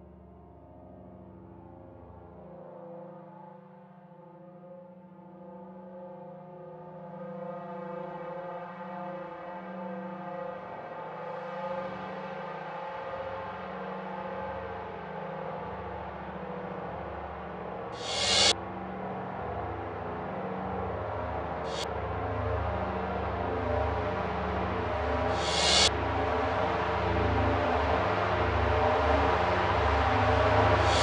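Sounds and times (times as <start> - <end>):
film score drone: 16.8 - 31.0
faint hiss: 18.0 - 18.5, 25.3 - 25.9, 30.8 - 31.0
steady low hum: 18.0 - 18.5, 21.4 - 31.0.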